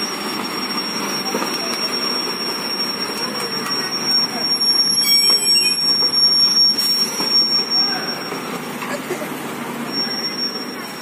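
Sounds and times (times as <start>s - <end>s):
high-pitched whine: 0.0s - 8.3s.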